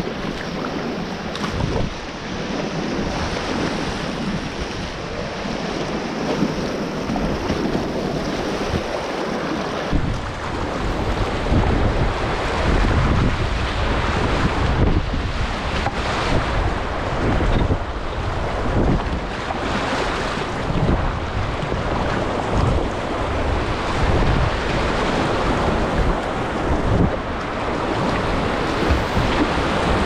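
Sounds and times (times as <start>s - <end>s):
water splashing against kayak bow: 0.0s - 30.0s
whitewater rushing: 0.0s - 30.0s
wind rumble on microphone: 0.0s - 30.0s.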